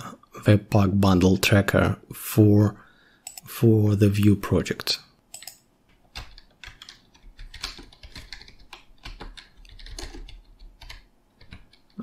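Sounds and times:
typing on computer keyboard: 5.3s - 12.0s.

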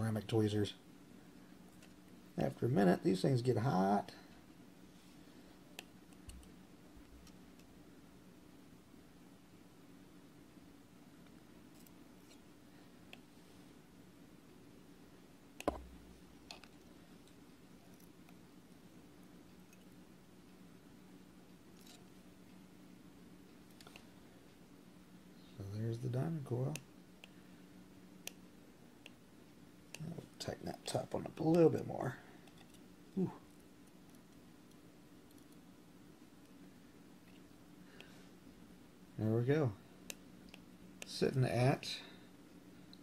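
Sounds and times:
low steady hum: 0.0s - 43.0s.

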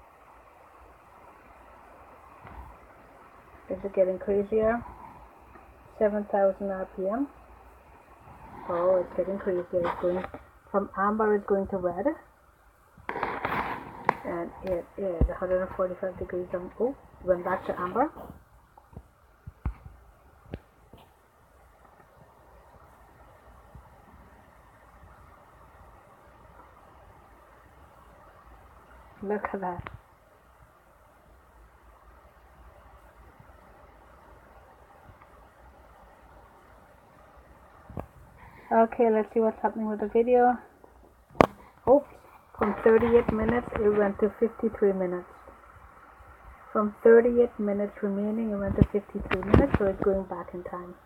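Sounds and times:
laptop cooling fan hiss: 0.0s - 51.0s.

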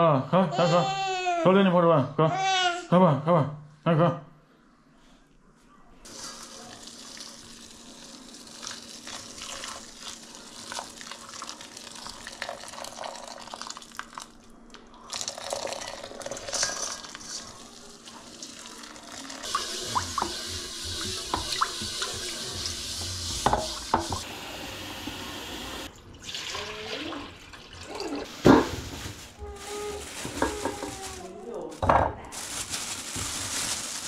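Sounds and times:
hot water pouring into pot: 6.1s - 14.4s, 15.1s - 17.4s, 18.1s - 29.0s
steel wool scrubbing a wok: 19.4s - 24.3s.

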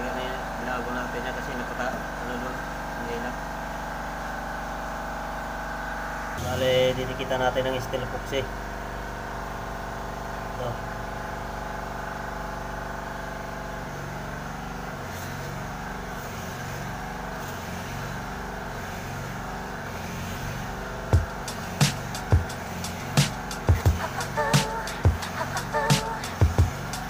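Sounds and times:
steady hum: 0.0s - 27.0s.

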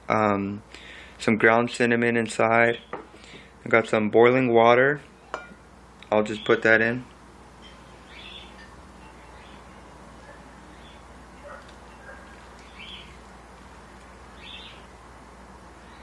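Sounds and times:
low steady hum: 0.0s - 16.0s
faint bird chirps: 7.6s - 13.2s, 14.3s - 14.9s.

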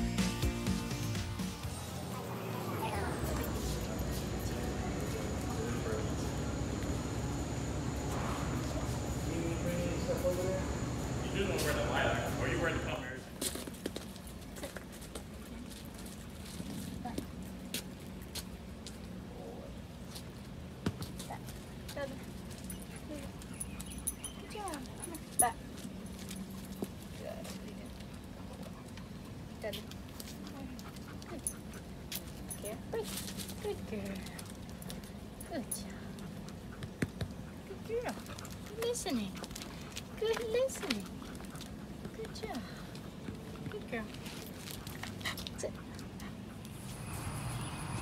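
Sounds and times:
dogs whining: 22.7s - 25.6s
dog claws tapping on concrete: 36.0s - 46.3s.

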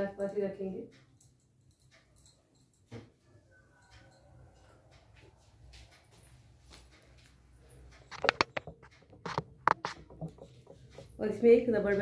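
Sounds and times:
hair rustling: 6.2s - 12.0s.

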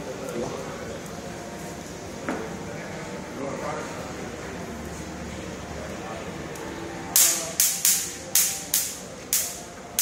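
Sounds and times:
electric swatter zapping insects: 7.2s - 10.0s.

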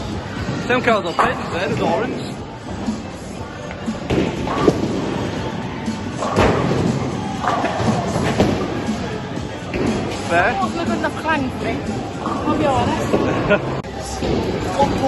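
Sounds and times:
background music: 0.0s - 15.0s
speech babble: 0.0s - 15.0s.

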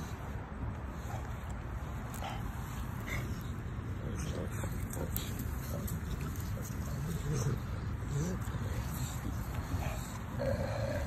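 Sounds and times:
puppy vocal sounds: 2.0s - 11.0s.

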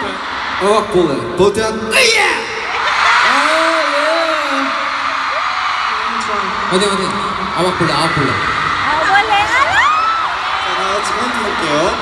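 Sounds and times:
crowd screaming: 0.0s - 1.2s, 2.2s - 12.0s.

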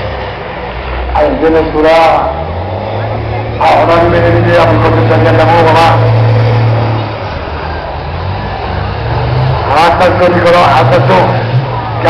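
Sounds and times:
diesel truck engines racing: 0.0s - 12.0s
commentator speaking: 1.1s - 2.5s, 3.5s - 6.5s, 9.6s - 11.6s.

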